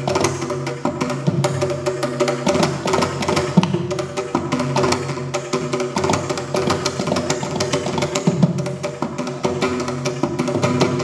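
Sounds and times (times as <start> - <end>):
hand drum rapid strokes: 0.0 - 11.0.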